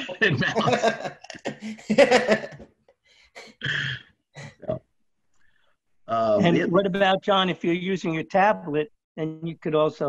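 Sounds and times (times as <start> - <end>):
man chuckling: 0.0 - 2.6.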